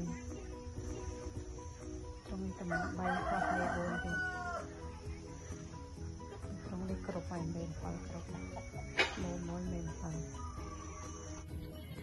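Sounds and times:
background music: 0.0s - 12.0s
rooster crowing: 2.7s - 4.7s.

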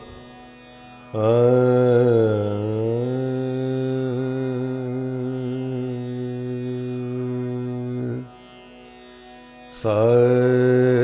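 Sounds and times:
man singing a long held note: 1.1s - 8.4s, 9.7s - 11.0s.

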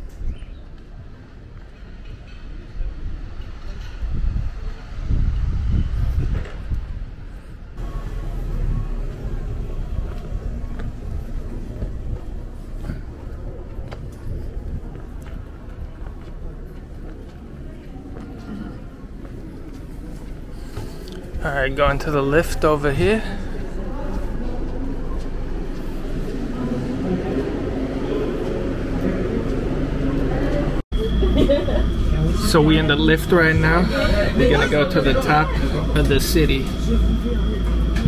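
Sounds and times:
low street rumble: 0.0s - 38.0s
voices of passers-by: 0.0s - 38.0s.

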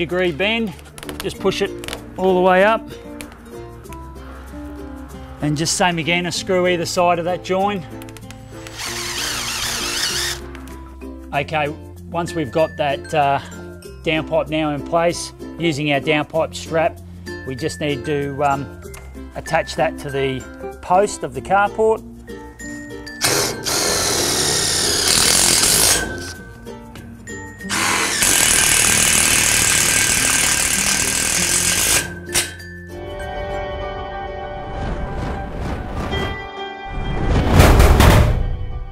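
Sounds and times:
background music: 0.0s - 38.9s
cordless drill whine: 8.6s - 10.4s, 23.2s - 26.4s, 27.6s - 32.2s
power driver driving screws: 8.6s - 10.4s, 23.2s - 26.4s, 27.7s - 32.6s.

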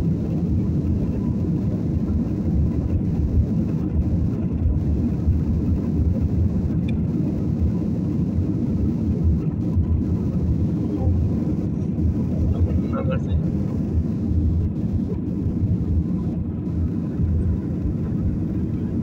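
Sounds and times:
airliner cabin engine rumble: 0.0s - 19.0s.

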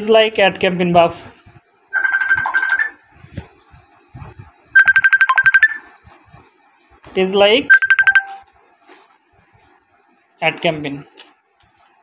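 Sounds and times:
electronic trilling ring: 1.9s - 3.0s, 4.8s - 5.9s, 7.7s - 8.5s.

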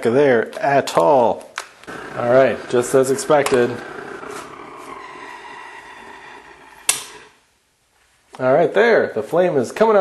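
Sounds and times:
propane burner flame hissing: 1.9s - 7.4s
sharp click: 6.9s - 7.2s.

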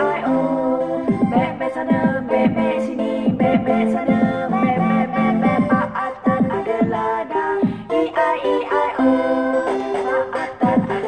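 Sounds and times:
electronic stepped melody: 0.0s - 11.0s.

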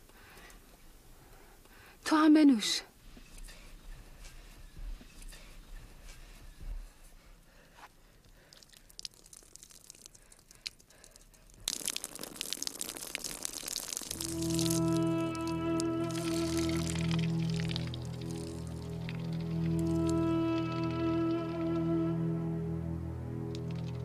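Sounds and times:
water splashing onto stony ground: 8.6s - 20.3s
soft music with held chords: 14.2s - 24.0s.

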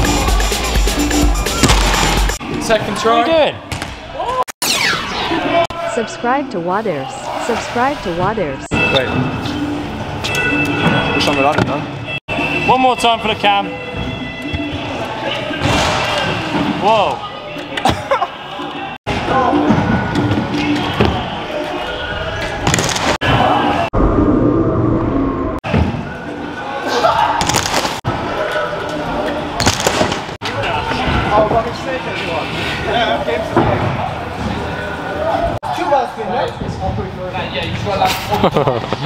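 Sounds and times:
music in a large hall: 0.0s - 2.4s
voices in a large hall: 2.4s - 23.9s, 25.6s - 38.9s.

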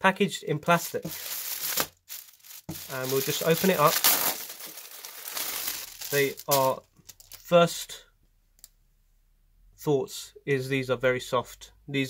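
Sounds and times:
plastic packaging crinkling: 0.7s - 7.5s.

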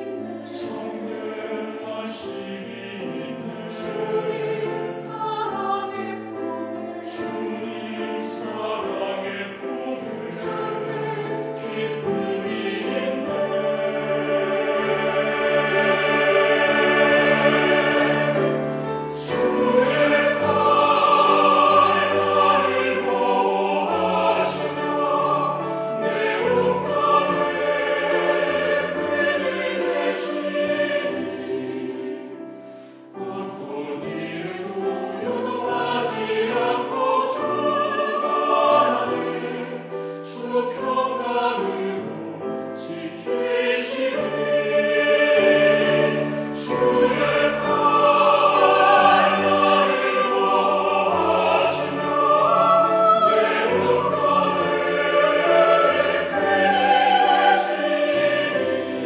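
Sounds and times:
choir singing in parts: 0.0s - 59.0s.

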